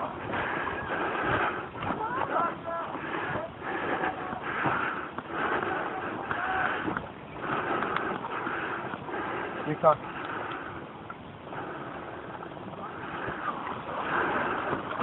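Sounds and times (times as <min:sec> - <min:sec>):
noisy background: 0:00.0 - 0:15.0
voices talking and calling: 0:00.0 - 0:15.0.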